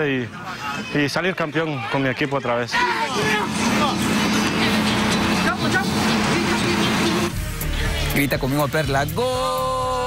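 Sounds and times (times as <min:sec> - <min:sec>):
people calling out: 0:02.7 - 0:04.6
steady engine hum: 0:02.8 - 0:08.2.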